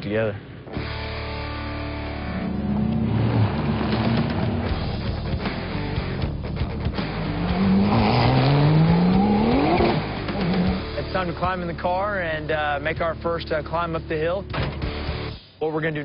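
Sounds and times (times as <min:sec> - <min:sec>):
music: 0:00.7 - 0:02.7, 0:03.9 - 0:16.0
race car engine accelerating: 0:02.0 - 0:06.0, 0:06.9 - 0:11.0.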